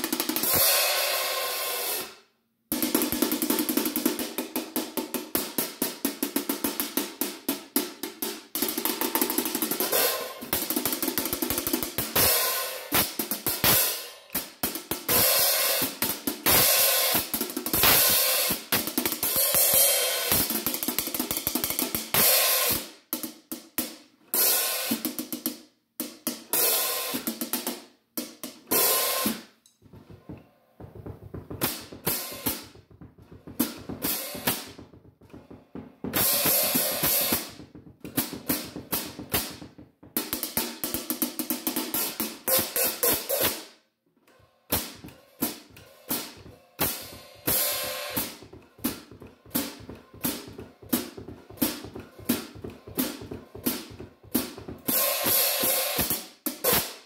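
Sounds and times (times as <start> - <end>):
hi-hat cymbals played with drumstick: 0.0 - 25.6, 26.4 - 27.8, 28.7 - 29.6, 31.6 - 32.7, 33.6 - 35.4, 36.1 - 43.7, 44.7 - 57.0.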